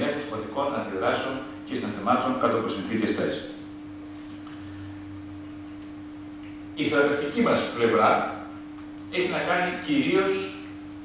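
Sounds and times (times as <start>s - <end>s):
faint low electrical hum: 0.0s - 11.0s
steady pure tone: 0.0s - 11.0s.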